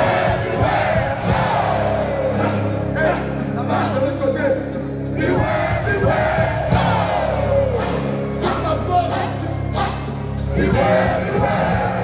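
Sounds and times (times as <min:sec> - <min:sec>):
crowd shouting: 0:00.0 - 0:04.0, 0:05.2 - 0:12.0
live band music through pa: 0:00.0 - 0:12.0.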